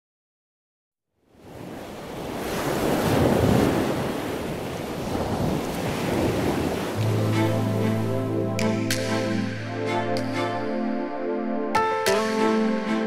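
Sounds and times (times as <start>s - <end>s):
rushing wind-like noise: 1.4s - 8.2s
held music chord with bass: 7.0s - 13.0s.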